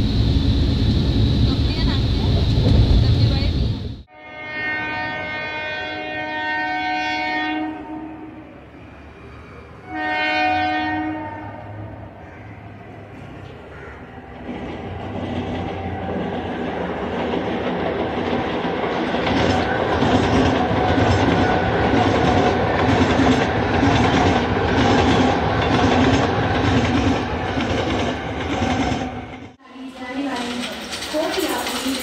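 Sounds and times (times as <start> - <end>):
electric train passing: 0.0 - 32.0
wheels clacking over rail joints: 14.2 - 32.0.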